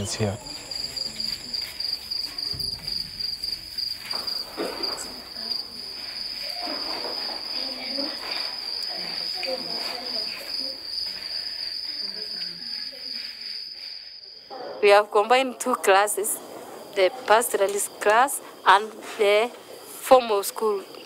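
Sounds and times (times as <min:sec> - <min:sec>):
crickets chirping: 0:00.0 - 0:21.0
faint voices: 0:00.0 - 0:21.0.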